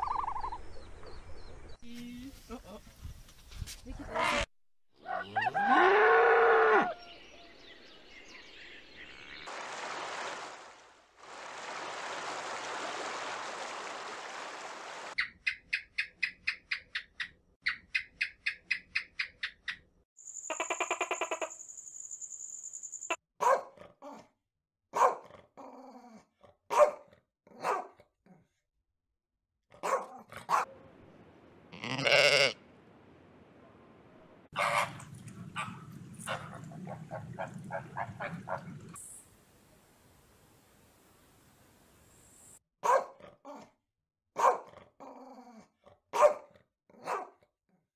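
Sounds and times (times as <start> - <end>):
dog barking: 23.4 - 23.9, 24.9 - 25.3, 26.7 - 28.0, 29.7 - 30.8, 34.6 - 38.7, 42.8 - 43.3, 44.4 - 44.8, 46.1 - 47.4
loud animal calls: 31.8 - 32.5.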